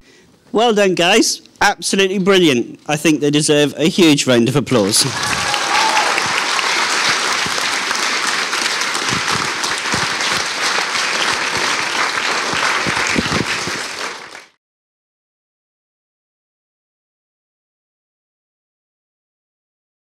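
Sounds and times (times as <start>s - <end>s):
audience applauding: 5.0s - 14.6s.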